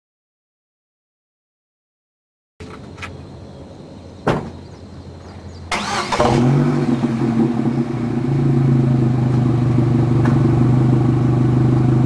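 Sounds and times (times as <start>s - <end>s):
car exhaust humming: 5.4s - 12.0s.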